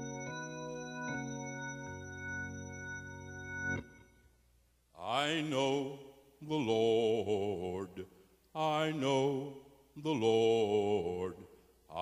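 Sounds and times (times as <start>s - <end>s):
man singing gospel with vibrato: 5.0s - 12.0s.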